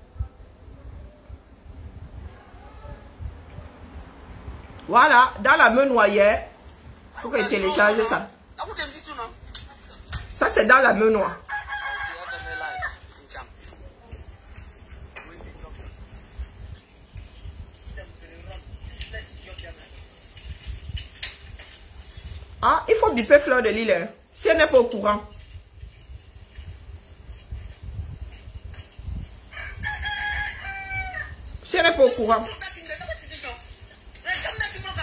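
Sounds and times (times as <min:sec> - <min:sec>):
rooster crowing: 0:11.4 - 0:13.1, 0:29.5 - 0:31.5.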